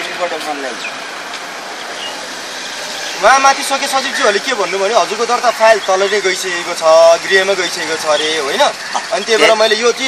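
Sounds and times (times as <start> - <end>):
distant road traffic hiss: 0.0 - 10.0.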